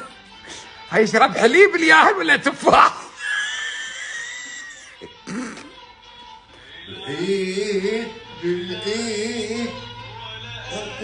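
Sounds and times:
child's high-pitched squeal: 3.2 - 5.0.

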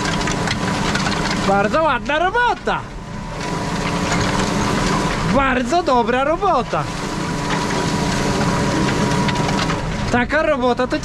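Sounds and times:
faint constant whine: 0.0 - 11.0
tractor engine under load: 0.0 - 11.0.

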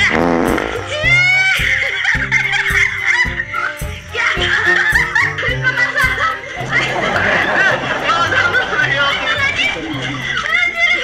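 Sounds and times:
fart sound: 0.0 - 0.9
background music with beat: 0.0 - 11.0
laughter: 4.4 - 10.6.

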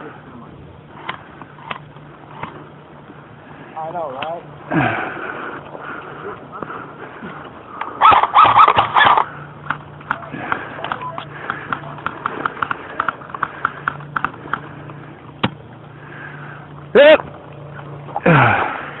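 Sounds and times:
loud crack: 7.9 - 10.6
sharp clicks and taps: 8.7 - 14.7
person calling out: 17.0 - 17.2.

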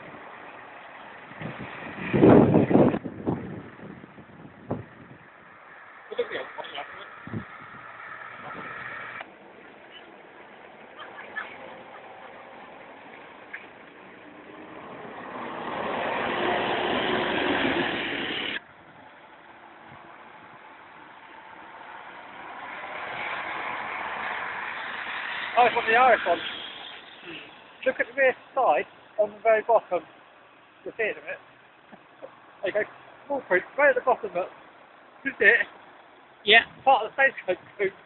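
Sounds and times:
diesel bus driving past: 0.0 - 36.4.

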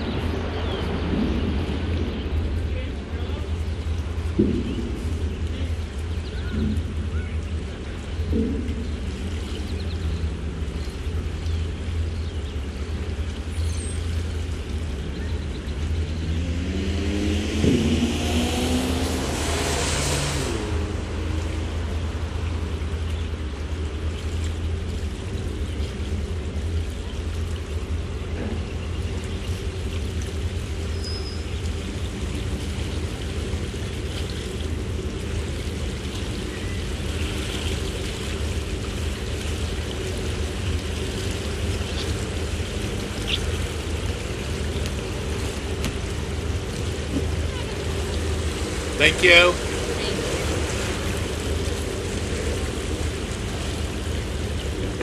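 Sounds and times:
boat engine low rumble: 0.0 - 55.0
water washing along hull: 0.0 - 55.0.

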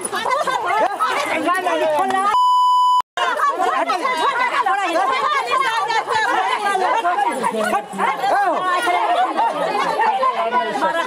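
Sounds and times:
censor bleep: 2.3 - 3.0
women shouting: 3.2 - 11.0.

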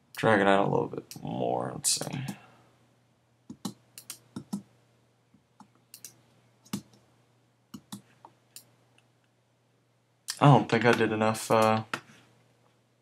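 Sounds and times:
computer mouse clicking: 3.5 - 4.7, 5.6 - 7.0, 7.7 - 8.7.

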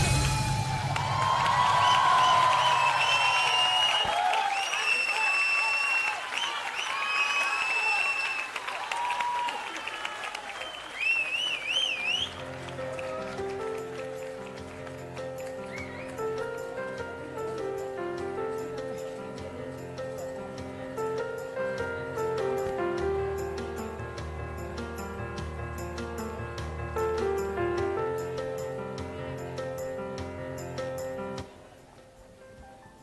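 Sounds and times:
high-pitched cheers and whoops: 0.0 - 13.4
audience applause: 0.0 - 17.1.

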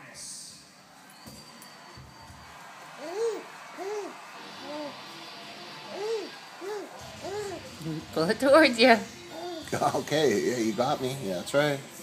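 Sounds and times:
baby vocalizing: 3.0 - 5.0, 5.9 - 8.1, 9.3 - 9.7.

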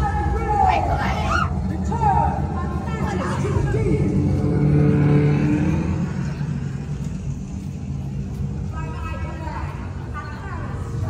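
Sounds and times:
loud low rumble: 0.0 - 10.1
indistinct voices: 0.0 - 11.0.

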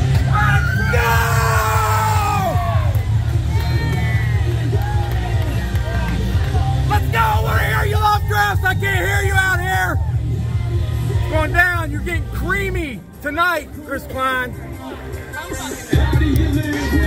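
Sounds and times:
entrance music with heavy bass beat: 0.0 - 17.0.

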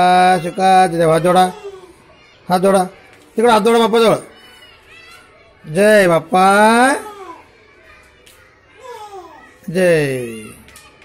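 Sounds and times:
small child's voice: 1.5 - 3.2, 4.3 - 5.6, 7.0 - 9.6.

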